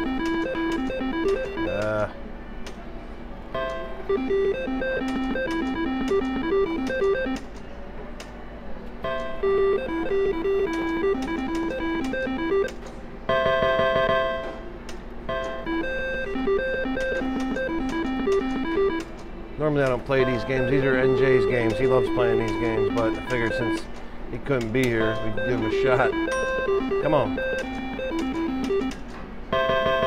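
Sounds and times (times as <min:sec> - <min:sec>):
slot machine ringing chime: 0:00.0 - 0:02.0, 0:03.6 - 0:07.4, 0:09.1 - 0:12.7, 0:15.3 - 0:19.0, 0:20.1 - 0:23.8, 0:25.0 - 0:29.0, 0:29.6 - 0:30.0
slot machine beeping tunes: 0:00.0 - 0:02.1, 0:03.5 - 0:07.5, 0:09.0 - 0:14.6, 0:15.2 - 0:19.2, 0:20.0 - 0:23.9, 0:24.8 - 0:30.0.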